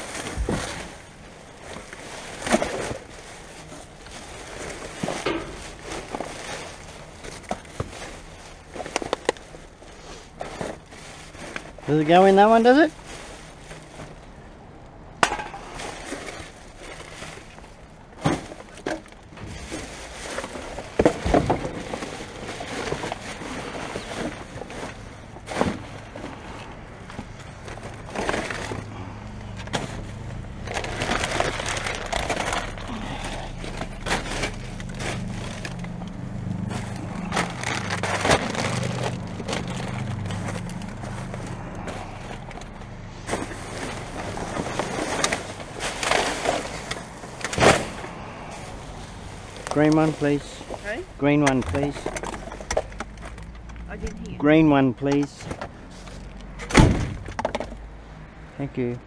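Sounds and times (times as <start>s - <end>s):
plastic bags rustling: 0.0s - 56.6s
low steady hum: 12.9s - 55.7s
cans and bottles clinking: 15.2s - 16.1s.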